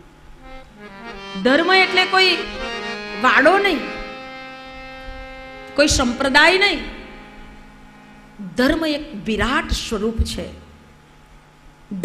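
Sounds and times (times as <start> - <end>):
steady hum with overtones: 0.0 - 12.0
woman speaking: 1.3 - 4.0, 5.8 - 7.1, 8.4 - 10.7.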